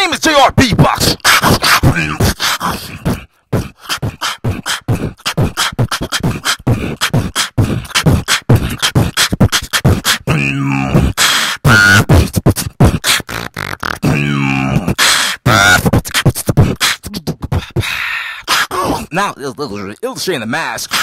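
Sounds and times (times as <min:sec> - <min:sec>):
beatboxing mouth sounds: 0:00.6 - 0:19.2, 0:20.0 - 0:21.0.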